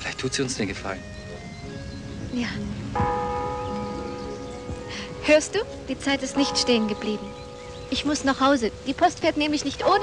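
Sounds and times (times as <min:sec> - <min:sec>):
clock bell striking: 0:03.0 - 0:10.0.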